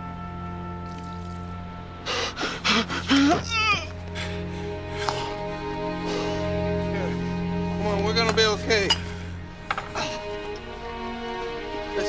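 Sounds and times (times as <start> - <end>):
film score with held notes: 0.0 - 12.0
man making distressed sounds: 2.5 - 4.0.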